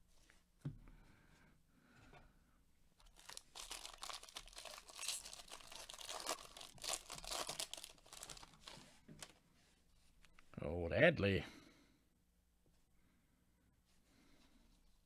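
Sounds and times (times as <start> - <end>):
card pack wrapper tearing: 3.0 - 9.3
cards rustling: 3.0 - 9.4.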